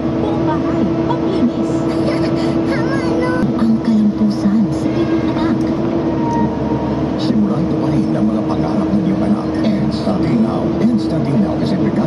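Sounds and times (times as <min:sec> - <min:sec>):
excavator engine and hydraulics: 0:00.0 - 0:12.0.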